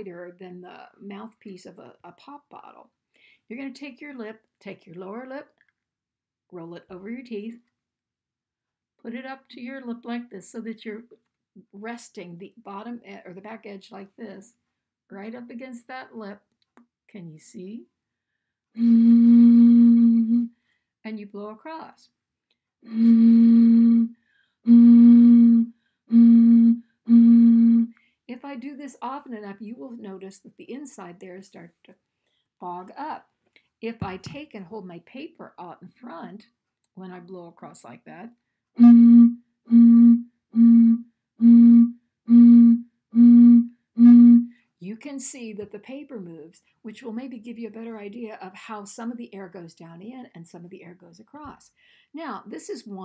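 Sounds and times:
bottle blown low note: 0:18.8 - 0:20.6, 0:22.8 - 0:28.0, 0:38.8 - 0:44.6.

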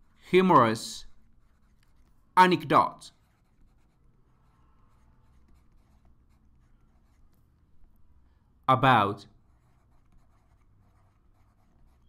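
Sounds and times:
stylus scratching on tablet: 0:00.0 - 0:07.9, 0:09.3 - 0:12.0.

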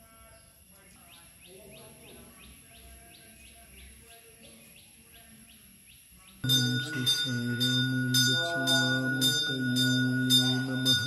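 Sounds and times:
temple bell ringing: 0:06.4 - 0:11.0.

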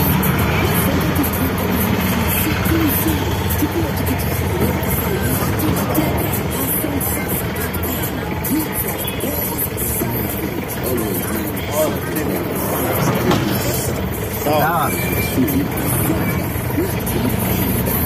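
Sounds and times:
engine rumble: 0:00.0 - 0:18.0
music: 0:00.0 - 0:18.0
street traffic: 0:00.0 - 0:18.0
voices: 0:00.0 - 0:18.0.

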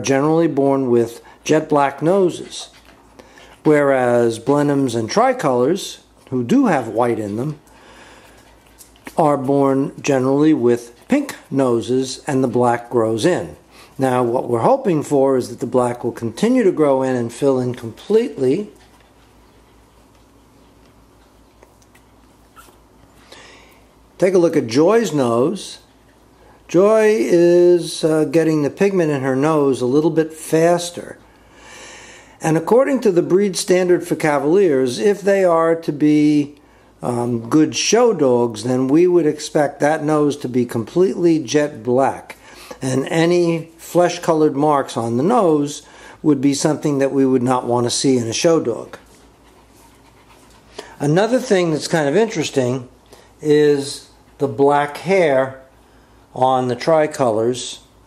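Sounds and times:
puppies breathing: 0:01.0 - 0:14.2, 0:16.2 - 0:24.2, 0:25.6 - 0:26.7, 0:31.1 - 0:32.4, 0:36.5 - 0:37.0, 0:42.3 - 0:42.8, 0:45.7 - 0:53.4
puppy squeaking: 0:21.9 - 0:22.9.

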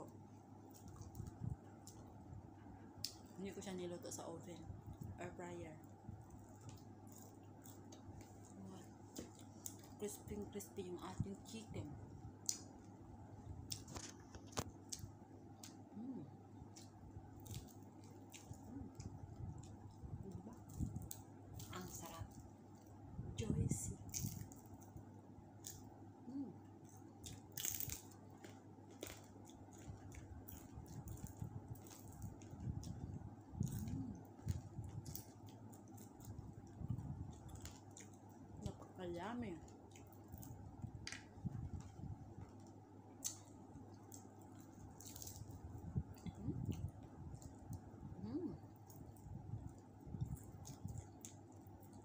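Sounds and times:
crispy chicken skin crackling: 0:26.9 - 0:33.0, 0:43.2 - 0:45.8.

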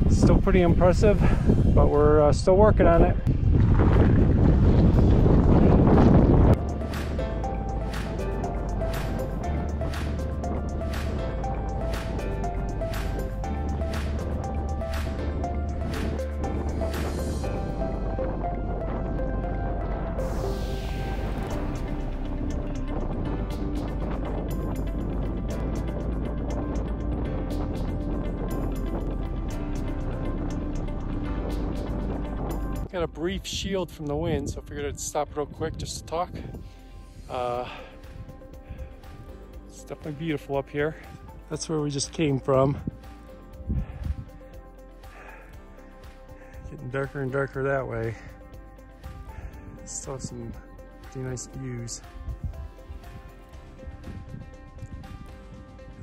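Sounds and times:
wind buffeting microphone: 0:00.0 - 0:56.0
background music with steady beat: 0:04.9 - 0:56.0.

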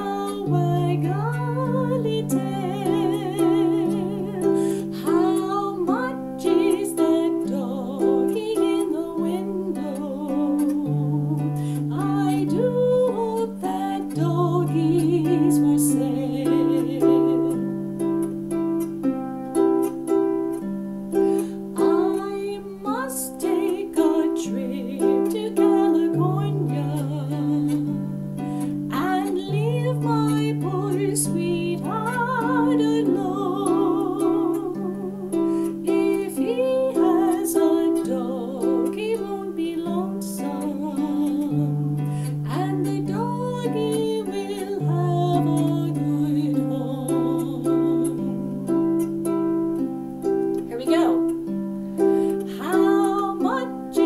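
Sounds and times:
woman singing: 0:00.0 - 0:18.3, 0:19.6 - 0:49.6, 0:50.5 - 0:54.0
harp plucked: 0:00.0 - 0:54.0.

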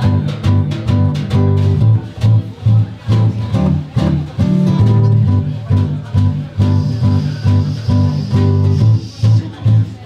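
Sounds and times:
guitar playing choppy low riff: 0:00.0 - 0:10.0.

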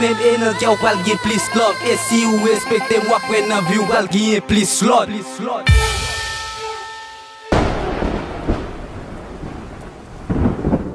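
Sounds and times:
thunder rumbling: 0:07.5 - 0:10.9.

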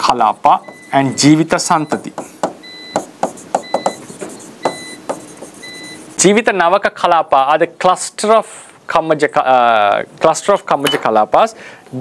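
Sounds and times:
stylus tapping on touchscreen: 0:02.0 - 0:05.6.

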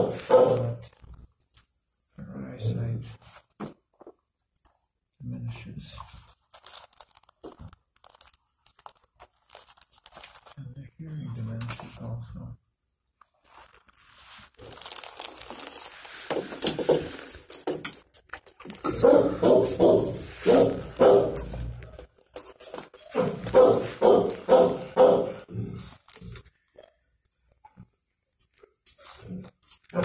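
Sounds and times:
dog making quick repeated sounds: 0:00.0 - 0:00.8, 0:19.0 - 0:21.6, 0:23.0 - 0:25.4.

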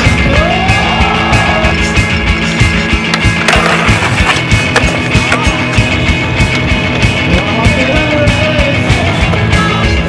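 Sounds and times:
rock music: 0:00.0 - 0:10.0
skateboard rolling on concrete: 0:00.0 - 0:10.0
skateboard clacks: 0:03.0 - 0:06.7.

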